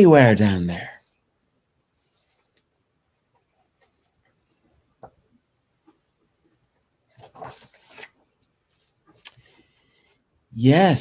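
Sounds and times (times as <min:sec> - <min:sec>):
paper page rustling: 0:07.1 - 0:09.2.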